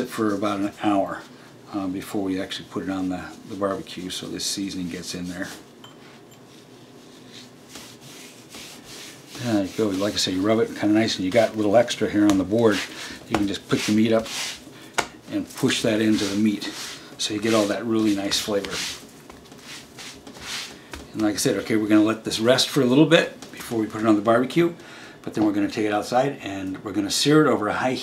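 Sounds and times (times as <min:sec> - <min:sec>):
hands rubbing seasoning into meat: 0:06.4 - 0:21.8.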